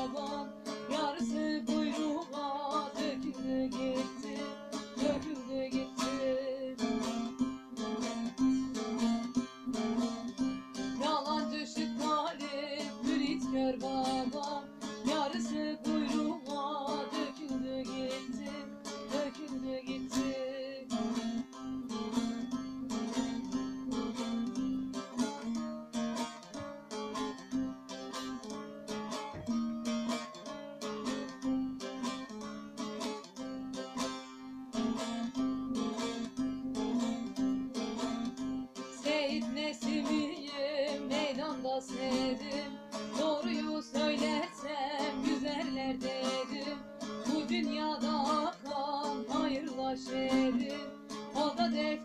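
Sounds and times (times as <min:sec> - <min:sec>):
long-necked lute strumming: 0:00.0 - 0:52.0.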